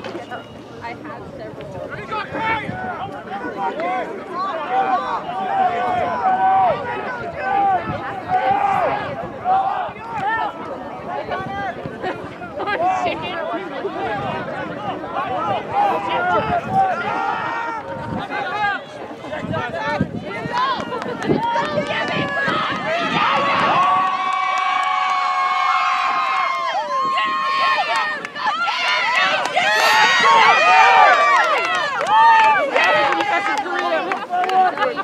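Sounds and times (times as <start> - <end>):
long drawn-out shout: 3.6 - 11.7, 14.0 - 18.8, 20.5 - 33.6
people shouting calls: 20.4 - 34.9.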